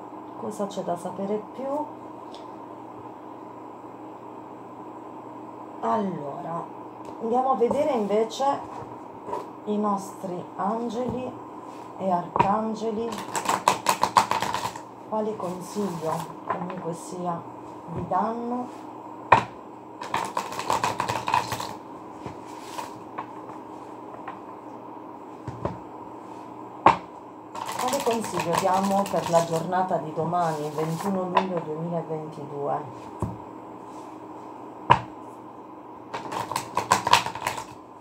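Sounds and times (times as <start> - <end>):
cards being shuffled: 13.1 - 14.8, 15.4 - 16.4, 20.0 - 23.3, 27.6 - 29.7, 36.2 - 37.8.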